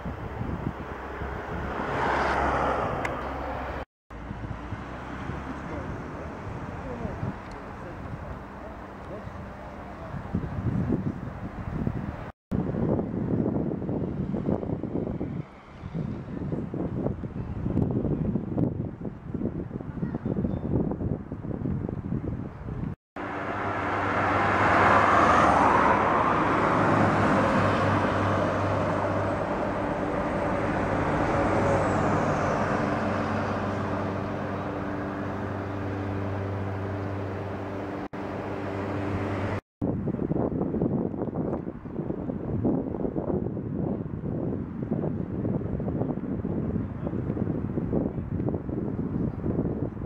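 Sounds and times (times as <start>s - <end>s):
wind buffeting microphone: 0.0s - 23.0s, 24.0s - 37.7s, 39.1s - 50.0s
traffic noise: 0.0s - 50.0s
bus engine running: 25.6s - 39.6s.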